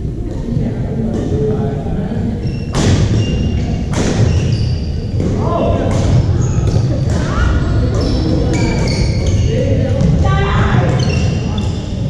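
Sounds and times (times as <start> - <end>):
sneakers squeaking on gym floor: 2.4 - 12.0.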